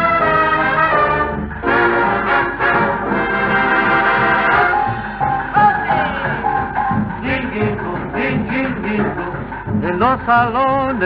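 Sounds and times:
brass section playing boogie-woogie: 0:00.0 - 0:05.0.

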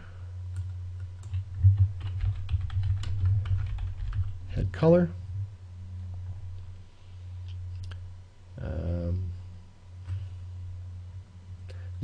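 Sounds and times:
steady low hum: 0:00.0 - 0:12.0
typing on computer keyboard: 0:00.6 - 0:04.3.

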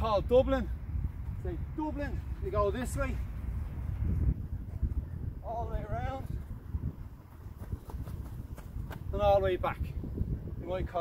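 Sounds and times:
running footsteps on artificial turf: 0:06.2 - 0:09.2.

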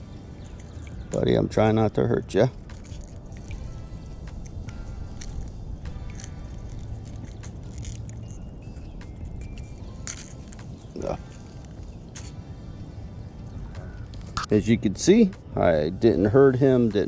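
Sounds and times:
wind rumble: 0:00.0 - 0:15.6
soft background music: 0:00.0 - 0:17.0
pliers clicking on hooks: 0:04.2 - 0:11.6.

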